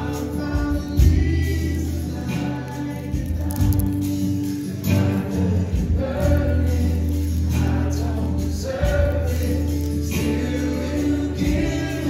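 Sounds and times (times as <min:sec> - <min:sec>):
band playing: 0:00.0 - 0:12.0
women singing worship music: 0:00.0 - 0:12.0.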